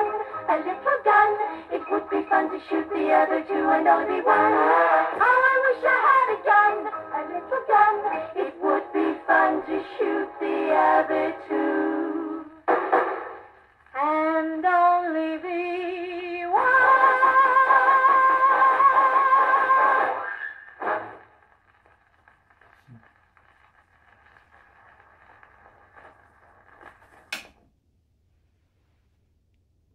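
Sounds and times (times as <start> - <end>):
female trio singing in harmony: 0.0 - 12.6, 14.8 - 20.1
record surface hiss: 0.0 - 29.9.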